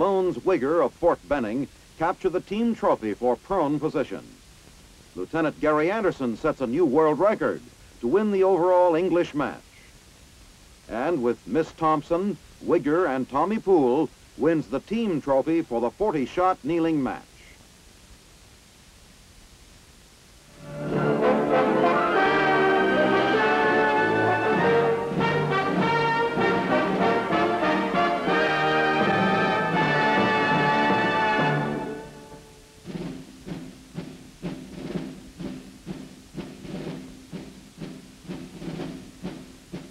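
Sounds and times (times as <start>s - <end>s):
orchestral music with brass and timpani: 20.6s - 32.6s.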